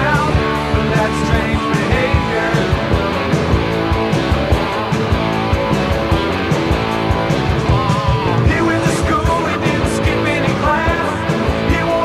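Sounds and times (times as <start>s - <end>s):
bass guitar: 0.0s - 12.0s
rock guitars: 0.0s - 12.0s
steady drum beat: 0.0s - 12.0s.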